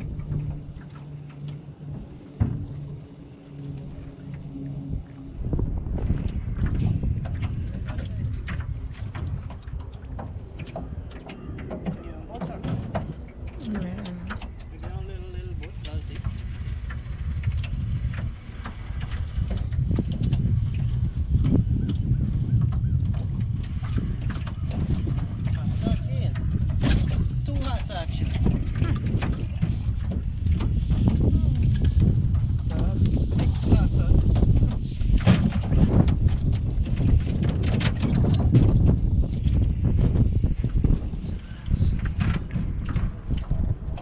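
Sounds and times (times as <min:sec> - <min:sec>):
wind rumble on microphone: 0:00.0 - 0:44.0.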